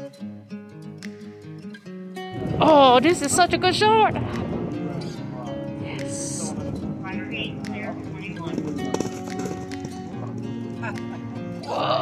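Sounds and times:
background song: 2.3 - 12.0
horse hoofbeats on grass: 6.1 - 11.0.

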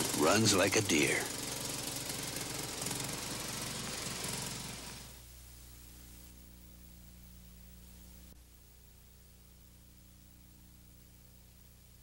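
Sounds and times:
lawn tractor engine running: 0.0 - 5.2.

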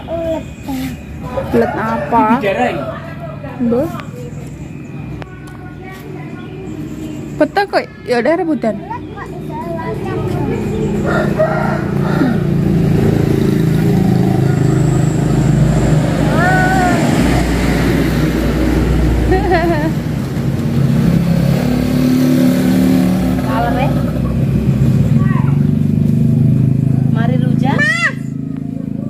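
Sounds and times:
vehicle engine running: 0.0 - 29.0.

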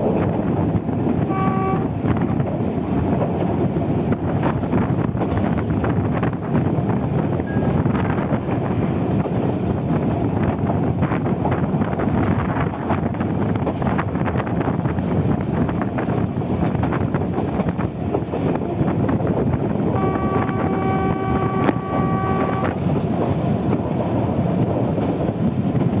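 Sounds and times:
rail car rumbling along track: 0.0 - 26.0
wind buffeting microphone: 0.0 - 26.0.

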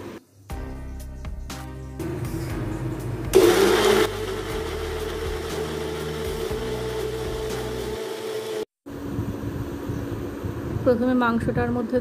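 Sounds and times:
mixer grinder motor: 3.3 - 10.8.

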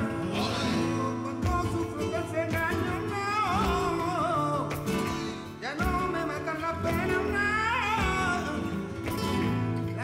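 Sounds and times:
person singing ornamented line: 0.0 - 4.8
guitar: 0.0 - 10.0.

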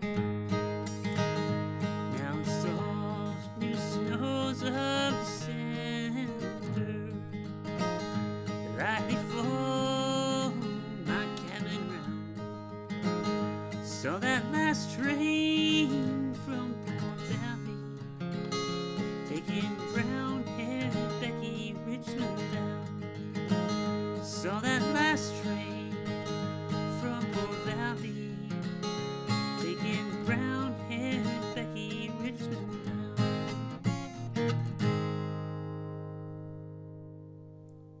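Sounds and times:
acoustic guitar picking: 0.0 - 38.0.

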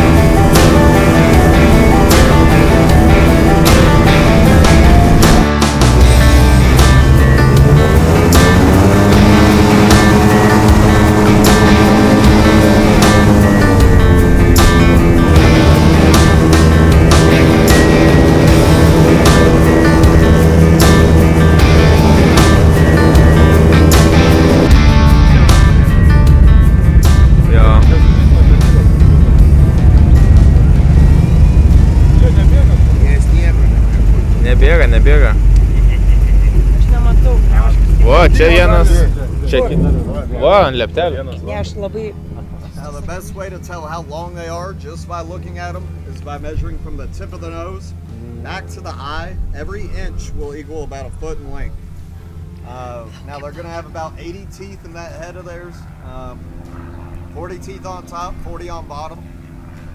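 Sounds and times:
rock music with drum beat: 0.0 - 35.8
airboat engine drone: 0.0 - 59.9.

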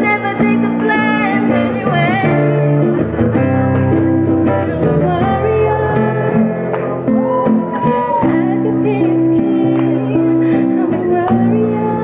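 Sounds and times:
woman singing into a microphone: 0.0 - 2.8, 4.4 - 12.0
guitar accompaniment: 0.0 - 12.0.

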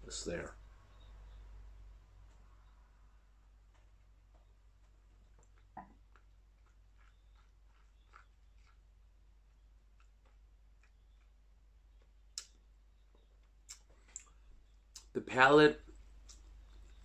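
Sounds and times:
low steady hum: 0.0 - 17.0
faint sharp clicks: 12.4 - 12.6.

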